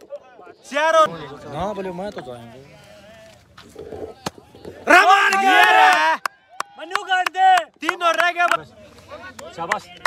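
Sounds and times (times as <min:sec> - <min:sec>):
men shouting: 0:04.8 - 0:06.2.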